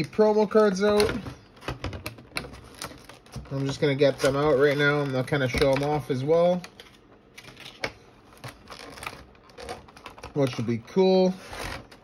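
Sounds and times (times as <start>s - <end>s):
packaging rustling and clicking: 0.0s - 10.8s.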